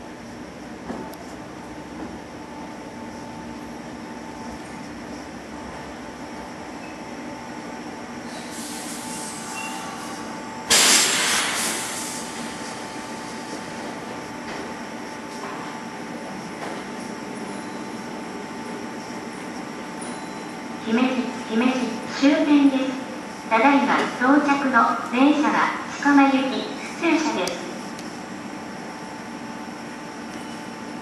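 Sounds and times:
electric train humming: 0.0 - 31.0
high brake hiss: 8.2 - 13.7
loud rush of air: 8.2 - 13.9.

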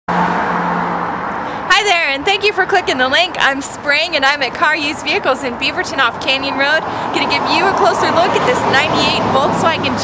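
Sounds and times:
vehicle engine hum: 0.1 - 10.0
woman speaking: 1.7 - 10.0.

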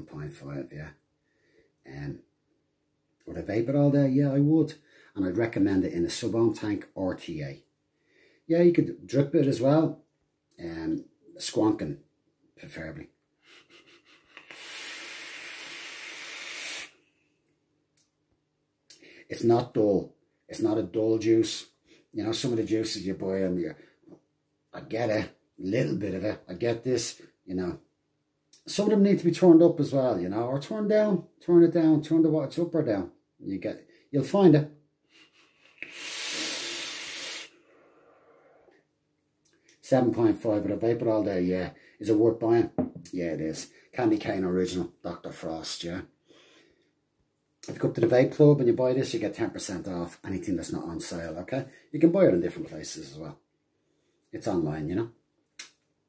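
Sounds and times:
faint breathing and mouth sounds: 13.4 - 18.1, 35.0 - 39.8
vape draw hiss: 13.6 - 17.0, 35.6 - 38.4
faint exhale: 14.4 - 17.2, 35.7 - 38.8, 46.2 - 46.9.

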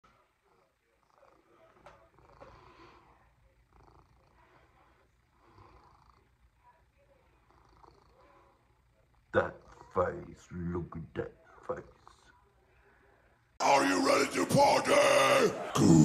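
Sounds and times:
cat purring: 0.1 - 12.6.

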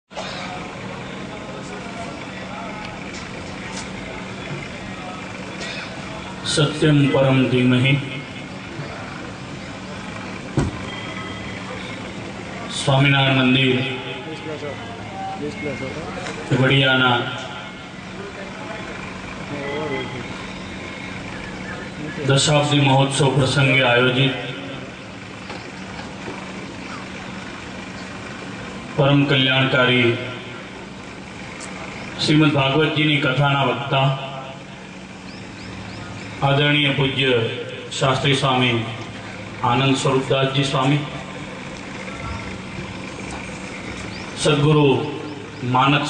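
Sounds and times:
faint constant hum: 0.1 - 46.0
steady background noise: 0.1 - 46.0
man speaking over a microphone: 6.3 - 9.0, 12.6 - 20.3, 21.9 - 24.9, 29.0 - 30.6, 32.2 - 34.6, 36.4 - 41.4, 44.4 - 46.0.

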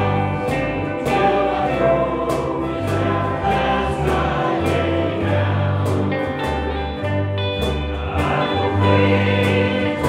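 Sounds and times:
choir singing gospel with band: 0.0 - 10.0.

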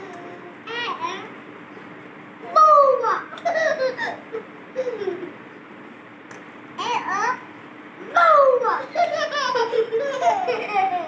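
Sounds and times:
baby laughing: 3.0 - 5.4, 8.6 - 11.0.

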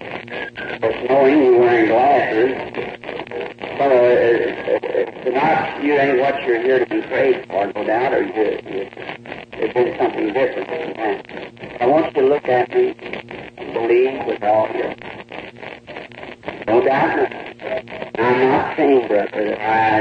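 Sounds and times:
man preaching: 3.8 - 8.7, 11.8 - 12.9, 18.2 - 20.0.

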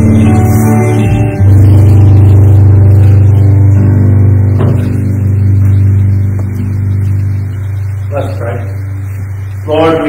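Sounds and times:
band chord ringing: 0.0 - 10.0.

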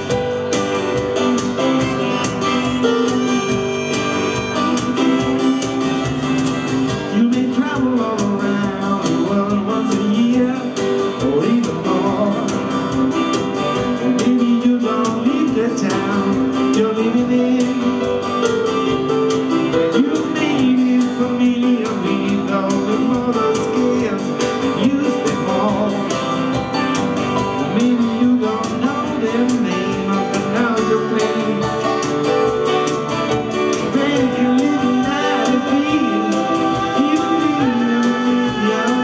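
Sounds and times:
guitar strumming: 0.0 - 39.0
man singing: 6.8 - 18.6, 19.7 - 26.6, 27.4 - 32.6, 33.6 - 39.0.

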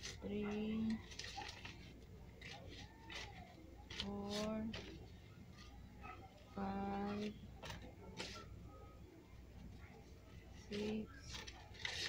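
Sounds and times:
person speaking: 0.0 - 1.8, 2.4 - 8.8, 9.9 - 12.0
banknotes crinkling and flicking: 0.0 - 12.0.

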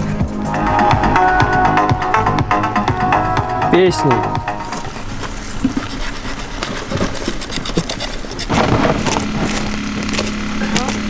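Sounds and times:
knife scraping on chopping block: 5.3 - 9.1.

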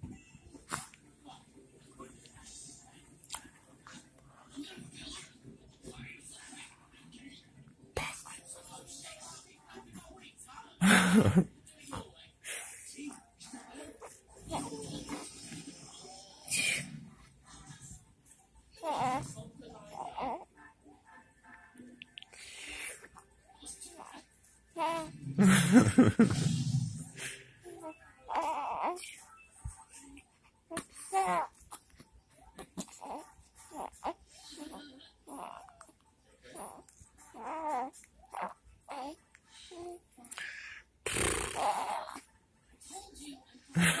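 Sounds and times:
baby cooing: 18.8 - 20.5, 24.8 - 25.2, 27.8 - 29.2, 30.7 - 31.9, 32.6 - 42.3
infant cooing: 28.3 - 29.0, 35.3 - 35.9, 37.4 - 39.2, 39.8 - 42.3.

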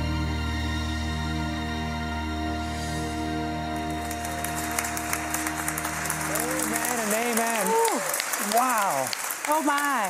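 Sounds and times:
applause: 3.7 - 10.0.

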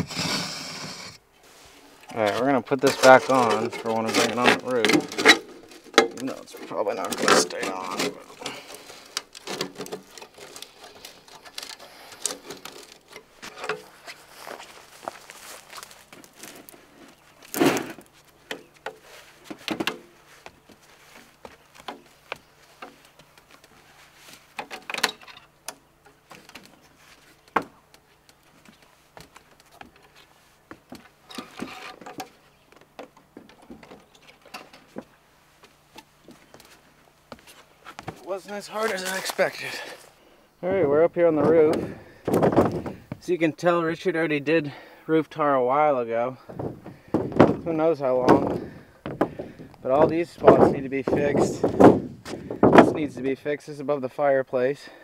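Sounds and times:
ladder being climbed: 2.1 - 40.0, 46.4 - 53.0.

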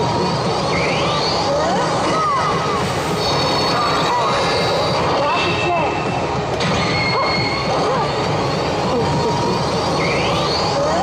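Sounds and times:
slot machine electronic tones: 3.1 - 8.8.

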